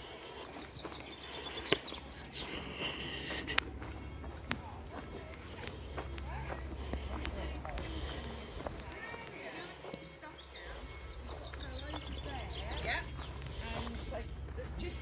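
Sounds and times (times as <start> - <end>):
footsteps on gravel: 0.0 - 15.0.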